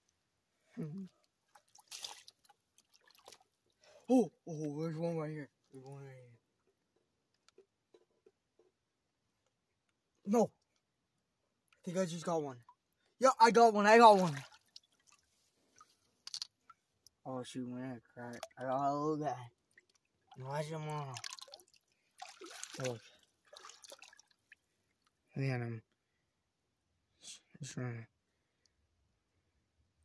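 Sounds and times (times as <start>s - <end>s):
feet wading in shallow water: 1.4s - 3.6s, 14.1s - 15.9s, 21.1s - 24.6s.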